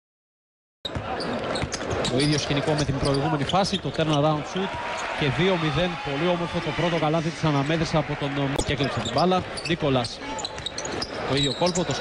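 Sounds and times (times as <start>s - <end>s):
steady arena background noise: 0.9s - 12.0s.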